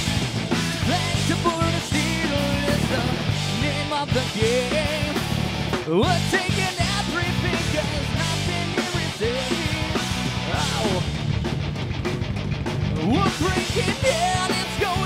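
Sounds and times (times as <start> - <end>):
live rock band: 0.0 - 15.0
singer on vocals: 13.0 - 15.0.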